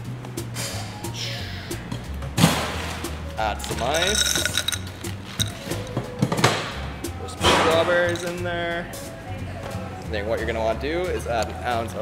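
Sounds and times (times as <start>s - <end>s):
background music: 0.0s - 12.0s
ice clinking into a glass: 3.7s - 6.0s, 7.8s - 8.4s.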